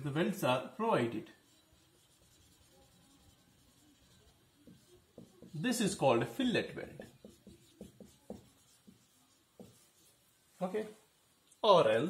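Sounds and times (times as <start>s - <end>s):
marker drawing on whiteboard: 1.0s - 10.4s.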